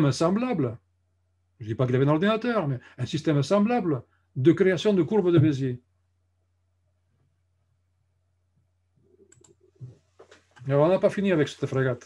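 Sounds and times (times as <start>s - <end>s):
mouse clicks: 9.2s - 10.5s.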